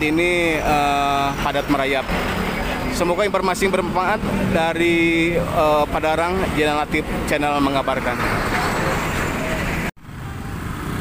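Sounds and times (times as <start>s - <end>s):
road traffic noise: 0.0s - 11.0s
truck passing close by: 0.2s - 11.0s.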